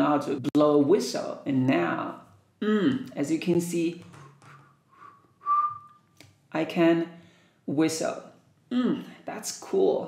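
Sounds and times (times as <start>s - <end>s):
man whistling: 4.2s - 6.1s.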